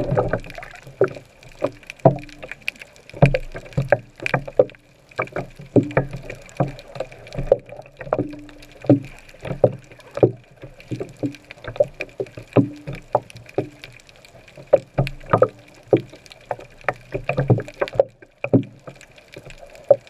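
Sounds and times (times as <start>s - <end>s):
muffled underwater knocks and clicks: 0.0s - 20.0s.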